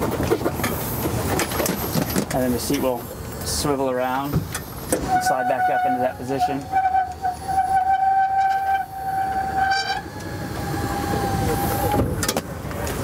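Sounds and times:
electric motor whining: 5.5 - 12.1.

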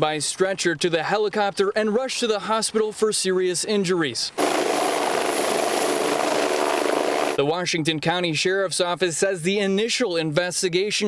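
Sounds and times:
helicopter rotor noise: 4.4 - 7.4
helicopter turbine whine: 4.4 - 7.4.

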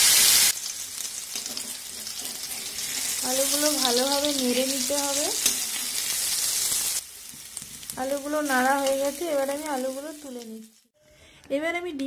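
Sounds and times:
potatoes sizzling in hot oil: 0.0 - 10.9.

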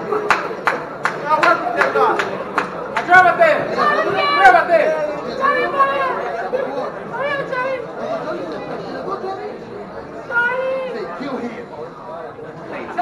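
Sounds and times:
overlapping voices chatter: 0.0 - 13.0.

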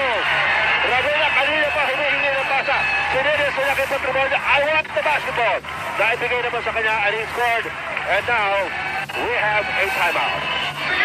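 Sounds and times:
arena crowd noise: 0.0 - 11.0
sports commentator talking: 0.0 - 11.0.

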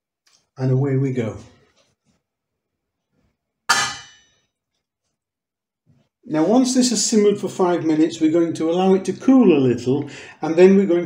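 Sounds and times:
metallic cookware clang: 3.7 - 4.4.

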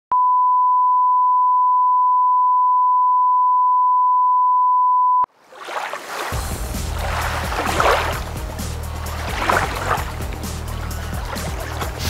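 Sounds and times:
steady test tone beep: 0.1 - 5.3.

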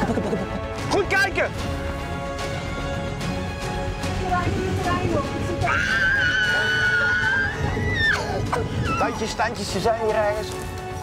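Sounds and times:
woman shrieking: 5.6 - 9.2.

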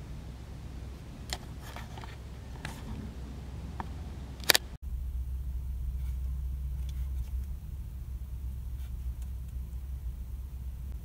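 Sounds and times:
steady low rumble: 0.0 - 11.0.

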